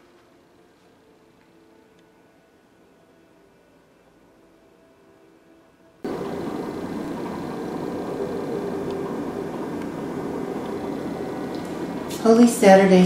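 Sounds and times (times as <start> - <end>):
steady hum and hiss: 0.0 - 13.0.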